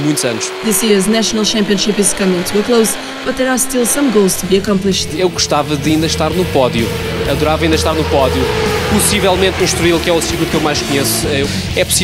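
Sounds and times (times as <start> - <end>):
man speaking: 0.0 - 0.7, 4.9 - 12.0
motorcycle engine drone: 0.0 - 12.0.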